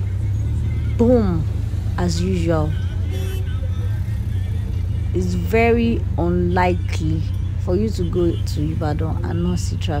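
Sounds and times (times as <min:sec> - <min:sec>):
minibus engine rumble: 0:00.0 - 0:10.0
road noise: 0:00.0 - 0:10.0.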